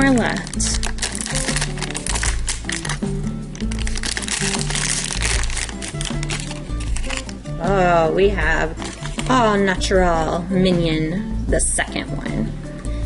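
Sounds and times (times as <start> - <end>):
foil bag crinkling: 0.0 - 7.5, 8.8 - 9.5
background music with bass line: 0.0 - 13.0.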